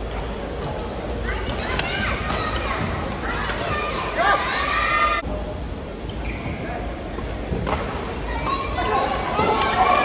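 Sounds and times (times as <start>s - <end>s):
sports hall noise: 0.0s - 10.0s.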